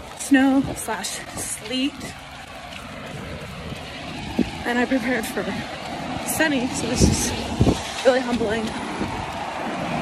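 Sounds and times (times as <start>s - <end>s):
wind and sleet rushing: 0.0s - 10.0s.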